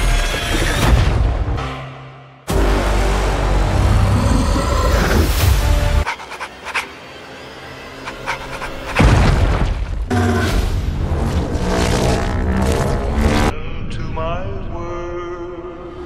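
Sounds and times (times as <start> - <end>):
dramatic music: 0.0 - 13.5.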